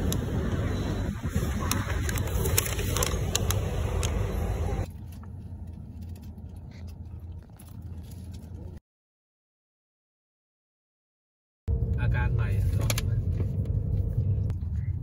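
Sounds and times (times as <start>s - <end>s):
paper and plastic rustling: 1.3s - 8.8s
low hum: 11.7s - 15.0s
low rumble: 11.7s - 15.0s.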